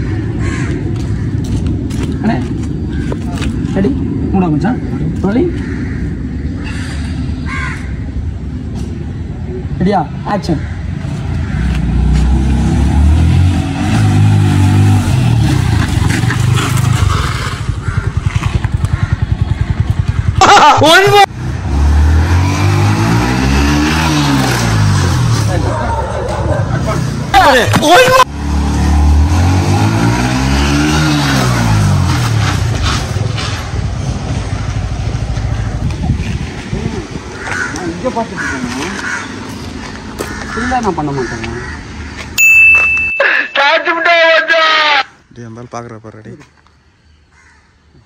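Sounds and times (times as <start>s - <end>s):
crow cawing: 0.0s - 3.4s, 4.8s - 8.4s, 10.4s - 12.1s, 17.7s - 20.4s, 37.3s - 42.4s, 47.2s - 48.0s
motorcycle passing by: 11.0s - 27.3s, 28.2s - 42.1s.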